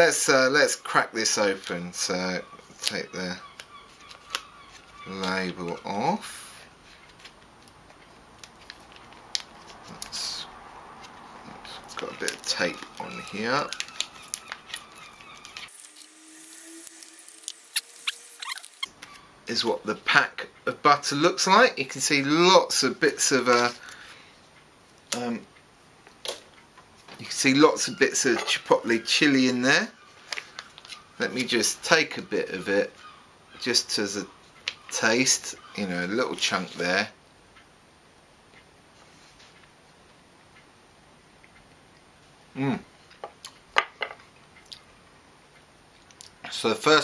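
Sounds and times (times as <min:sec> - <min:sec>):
paper wrapper crackling: 0:07.0 - 0:10.2, 0:11.0 - 0:18.9
tape peeling: 0:11.0 - 0:19.2.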